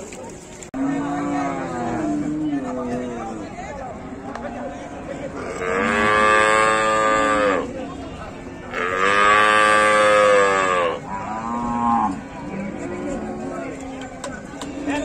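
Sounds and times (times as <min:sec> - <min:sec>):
cow mooing: 0:05.4 - 0:07.7, 0:08.7 - 0:12.2.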